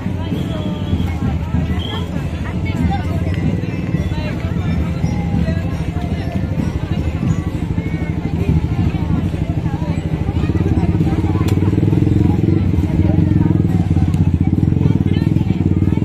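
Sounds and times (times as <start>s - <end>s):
people chattering: 0.0s - 16.0s.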